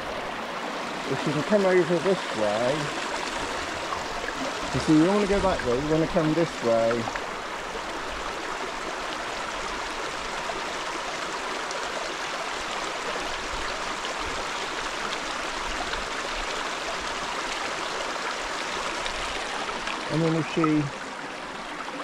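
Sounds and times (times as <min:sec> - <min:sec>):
stream rushing over stones: 0:00.0 - 0:22.0.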